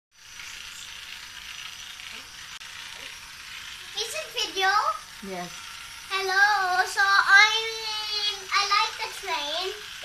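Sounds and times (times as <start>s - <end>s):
toy train motor whirring: 0.1s - 10.0s.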